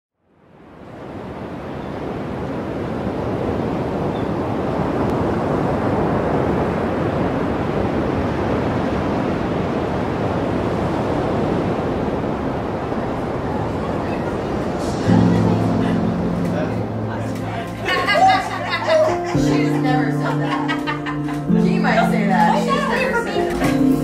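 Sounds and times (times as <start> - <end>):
breaking ocean waves: 0.3 - 24.0.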